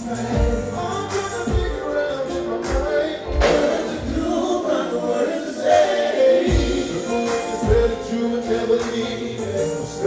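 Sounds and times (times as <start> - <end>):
live r and b band music: 0.0 - 10.0
several voices singing: 0.0 - 10.0.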